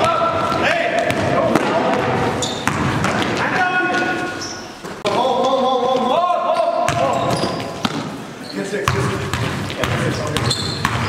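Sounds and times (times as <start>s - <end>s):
players' voices echoing: 0.0s - 11.0s
basketball bouncing on hardwood floor: 0.5s - 3.4s, 8.9s - 11.0s.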